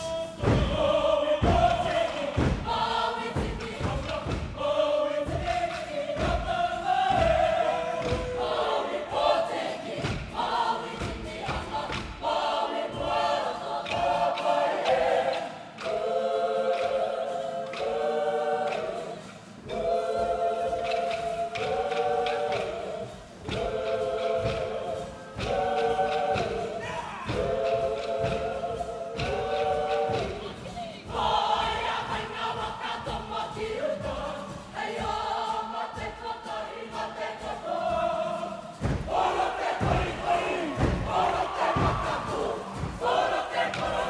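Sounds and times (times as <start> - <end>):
group singing together: 0.0 - 44.0
low rhythmic thumps: 0.0 - 44.0.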